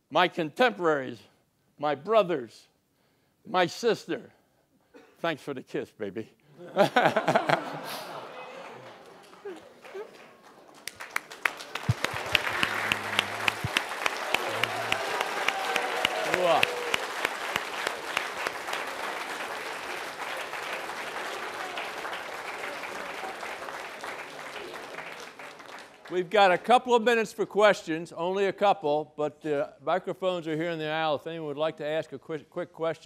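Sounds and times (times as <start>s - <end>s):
audience applauding: 7.2s - 26.3s.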